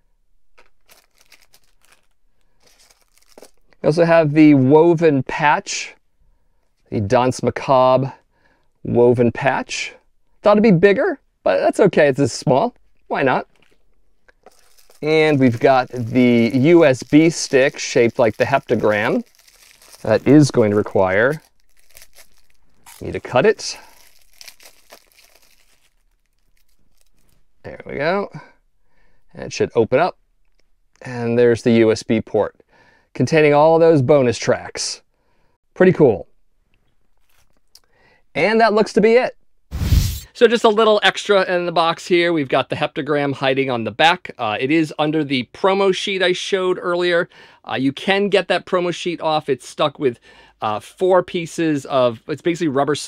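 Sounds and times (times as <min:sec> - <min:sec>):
plastic bag crinkling: 0:00.5 - 0:03.8, 0:13.5 - 0:27.5
rustling packaging in a box: 0:00.6 - 0:03.7, 0:14.4 - 0:27.4
small items clicking: 0:14.3 - 0:20.4.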